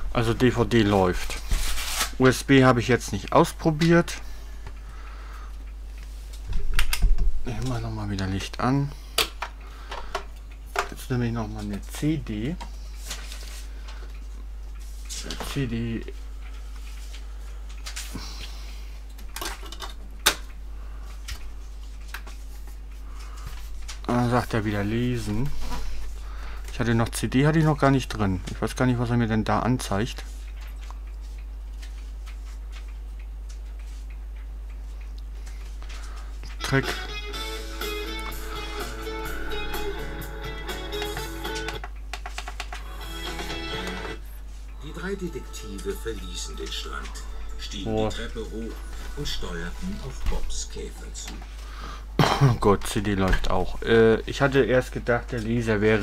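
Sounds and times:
guitar music through small speaker: 36.7s - 41.8s.

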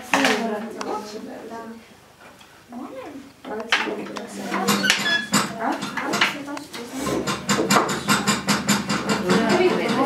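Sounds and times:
girls chattering: 0.0s - 10.0s
clicks and knocks from looms: 7.0s - 10.0s.

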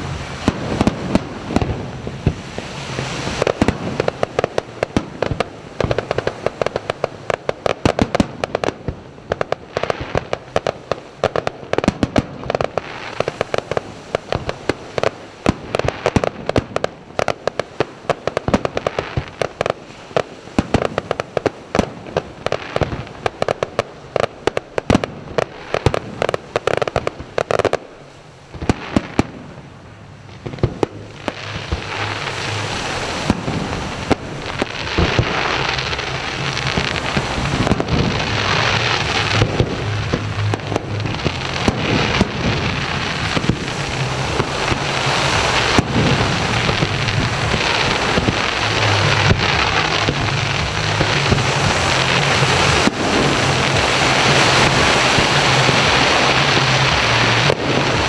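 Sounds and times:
fireworks bangs and crackling: 0.0s - 58.0s.

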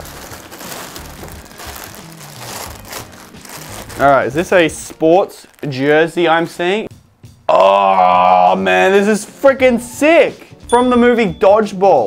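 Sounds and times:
plastic packaging crinkling: 0.0s - 6.7s.

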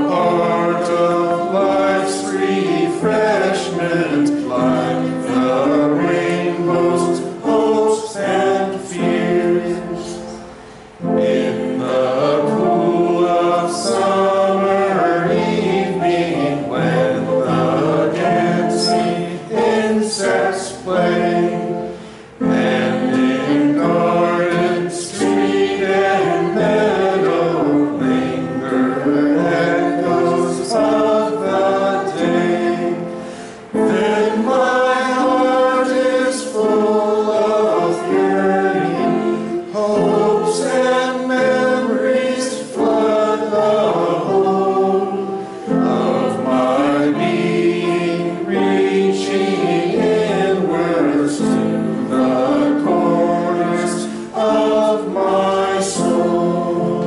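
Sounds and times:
group singing a hymn: 0.0s - 57.0s.

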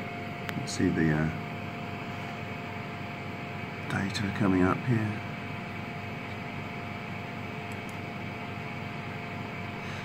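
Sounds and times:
machinery hum and hiss: 0.0s - 10.0s.

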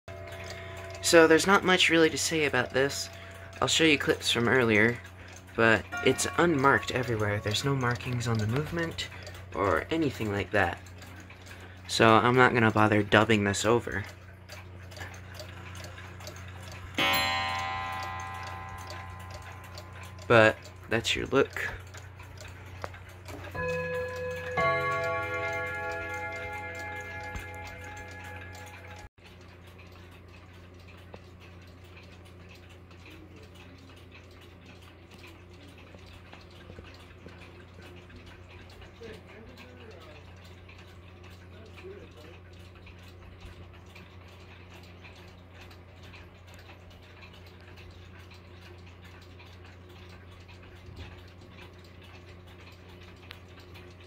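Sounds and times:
clock gong ringing: 0.1s - 10.8s, 15.7s - 22.6s, 23.3s - 29.1s
clock ticking faintly: 0.1s - 54.0s.

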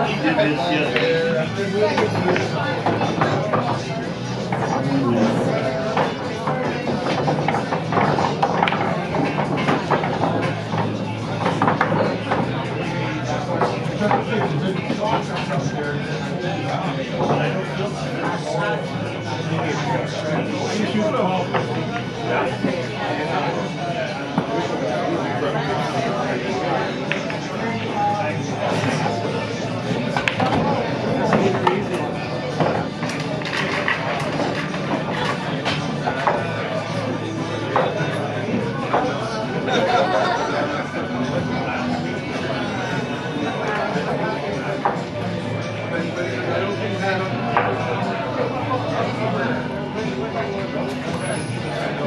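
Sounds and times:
pool balls clicking: 0.0s - 15.7s, 16.3s - 48.0s
crowd chatter: 0.0s - 52.0s
music playing: 0.0s - 52.0s.

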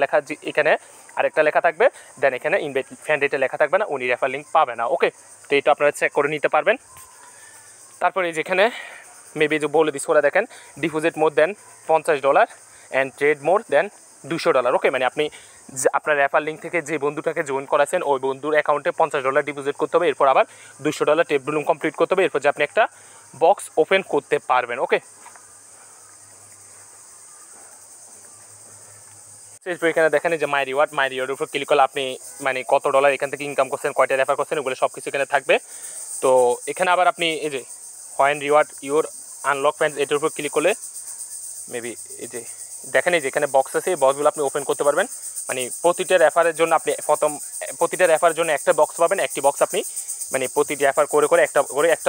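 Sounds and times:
man speaking: 0.0s - 6.8s, 8.0s - 25.1s, 29.6s - 35.6s, 36.2s - 40.8s, 41.7s - 52.0s
steady high-pitched hiss: 0.0s - 52.0s.

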